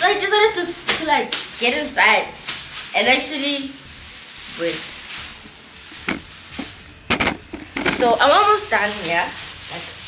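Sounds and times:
plastic bag crinkling: 0:02.4 - 0:10.0.

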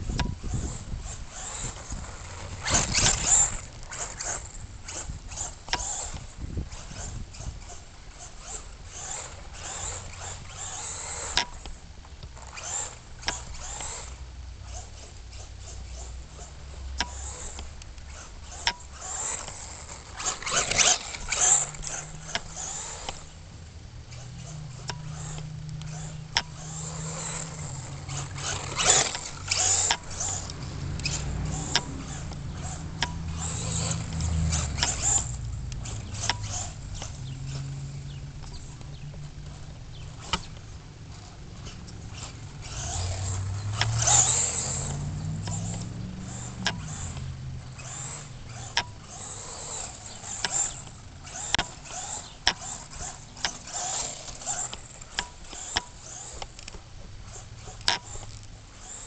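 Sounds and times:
rc car motor and tyres: 0:00.0 - 0:59.0.

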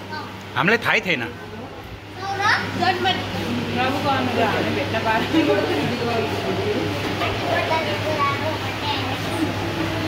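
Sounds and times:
steady low hum: 0:00.0 - 0:10.0
child's high voice: 0:02.2 - 0:03.1.

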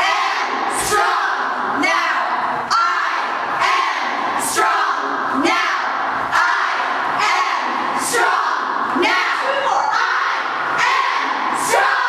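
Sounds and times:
girls yelling in unison: 0:00.0 - 0:12.0.

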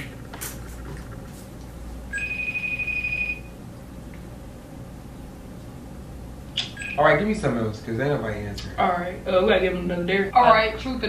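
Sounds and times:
low steady hum: 0:00.0 - 0:11.0
electronic phone beep: 0:02.1 - 0:03.5, 0:06.8 - 0:07.0.

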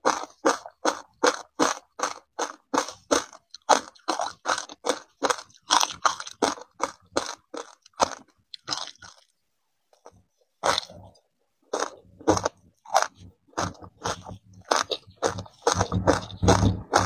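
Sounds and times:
loud crunching of chewed ice: 0:00.0 - 0:09.3, 0:10.0 - 0:11.1, 0:11.7 - 0:17.0.

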